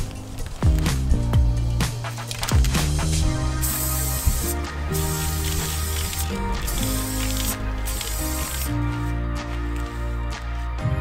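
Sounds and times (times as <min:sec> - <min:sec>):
background music: 0:00.0 - 0:11.0
spray paint can hissing: 0:02.1 - 0:10.6.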